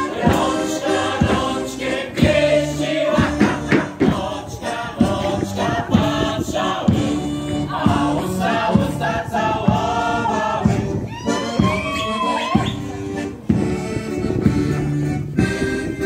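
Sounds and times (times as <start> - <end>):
mixed choir singing folk song: 0.0 - 11.3
accordion: 0.0 - 12.0, 12.6 - 16.0
drum beating steady pulse: 0.0 - 16.0.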